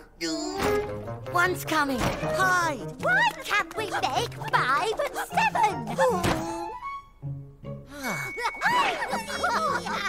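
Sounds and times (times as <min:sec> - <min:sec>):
soft background music: 0:00.0 - 0:10.0
person speaking: 0:00.2 - 0:06.8
thunk sound effect: 0:02.0 - 0:02.4, 0:06.2 - 0:06.5.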